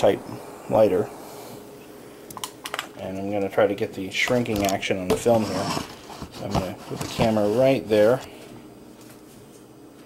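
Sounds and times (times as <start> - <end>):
faint steady hiss: 0.0 - 9.2.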